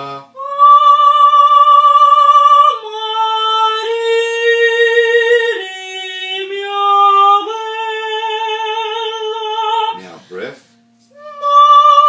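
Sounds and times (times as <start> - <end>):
person singing sustained notes: 0.0 - 10.2.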